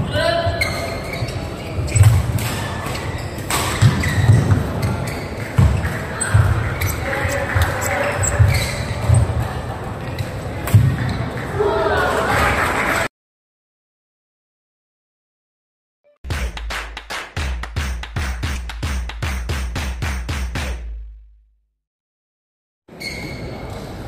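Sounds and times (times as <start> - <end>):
shoes squeaking on court: 0.5 - 11.4, 22.9 - 24.0
racket hitting shuttlecock: 2.0 - 4.6.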